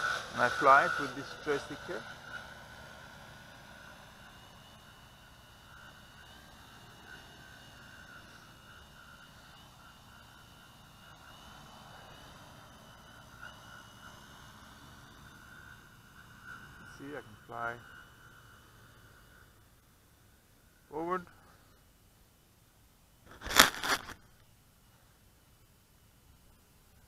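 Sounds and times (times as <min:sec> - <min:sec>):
quadcopter motor whine: 0:00.0 - 0:21.8.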